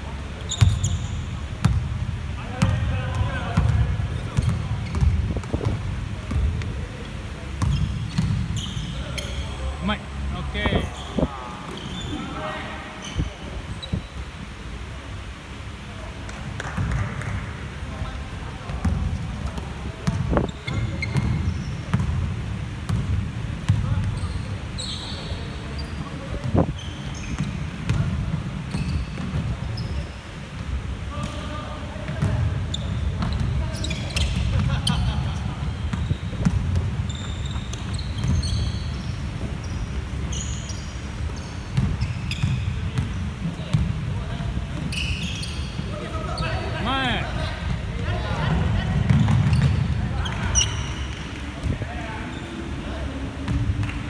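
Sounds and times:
sneaker squeaks: 0.4s - 1.8s, 2.6s - 6.4s, 7.0s - 10.0s, 10.6s - 14.3s, 18.7s - 22.2s, 23.7s - 30.4s, 31.1s - 47.8s, 48.5s - 52.8s
basketball bouncing on wooden floor: 4.4s - 6.5s, 41.8s - 43.9s.

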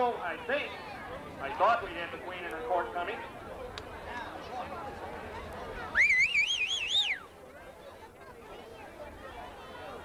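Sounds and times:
faint voices murmuring: 0.0s - 10.0s.

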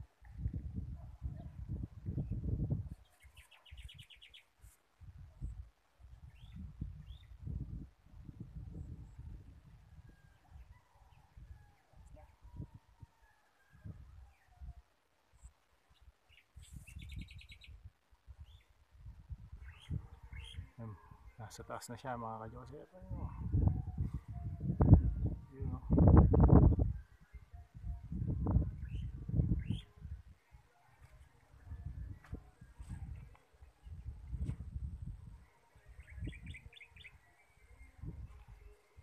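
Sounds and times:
wind buffeting microphone: 0.0s - 3.1s, 5.0s - 13.1s, 16.7s - 21.3s, 23.0s - 30.4s, 31.5s - 37.2s, 37.9s - 39.0s
bird chirping trill: 35.8s - 38.1s.

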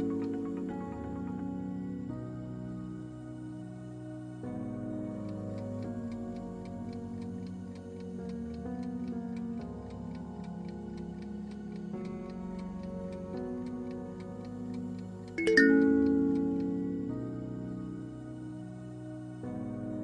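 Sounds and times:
timer clock ticking: 0.0s - 1.5s, 5.3s - 17.5s
soft background music: 0.0s - 20.0s.

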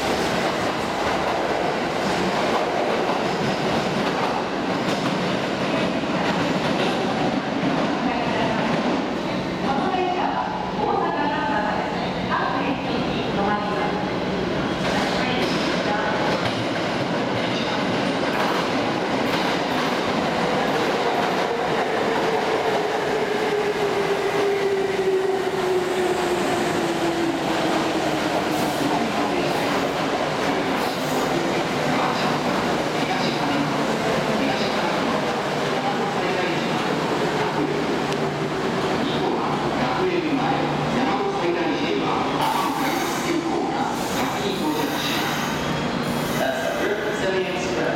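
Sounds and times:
train rumbling and braking: 0.0s - 47.9s.

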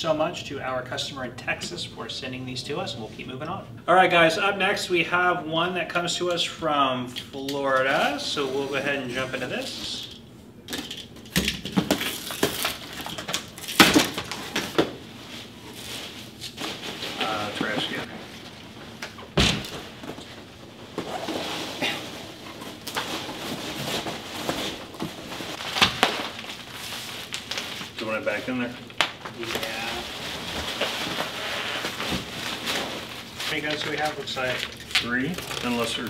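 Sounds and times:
cardboard scraping and rustling: 15.4s - 18.3s, 29.4s - 34.2s.

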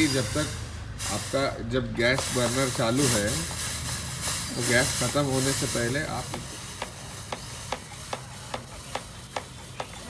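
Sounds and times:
gas fogger hissing: 0.0s - 10.0s.

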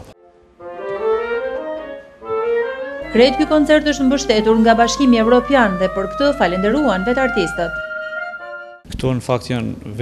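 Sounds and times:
woodwind trio chamber music: 0.0s - 8.9s.

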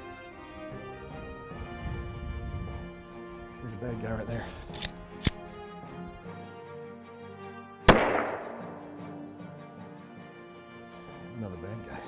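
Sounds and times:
background music: 0.0s - 12.0s
pistol shot with echo: 7.9s - 9.0s.

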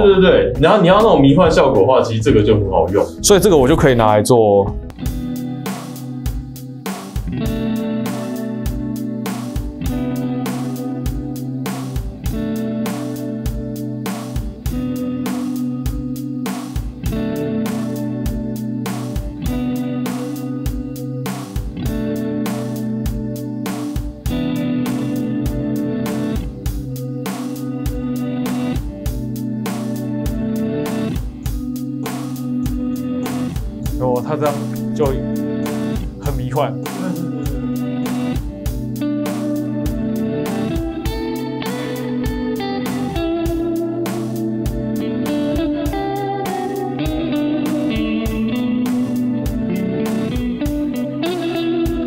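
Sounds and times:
reversed electric guitar loop: 4.7s - 52.0s.

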